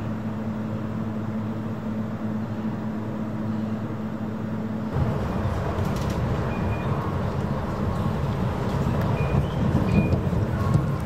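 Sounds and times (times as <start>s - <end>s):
ferry engines humming: 0.0s - 11.0s
rough low rumble: 4.9s - 11.0s.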